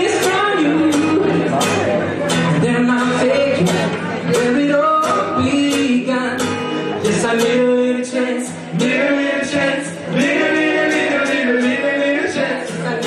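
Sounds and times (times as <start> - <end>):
acoustic guitar strumming: 0.0 - 13.0
group singing in unison: 7.4 - 13.0.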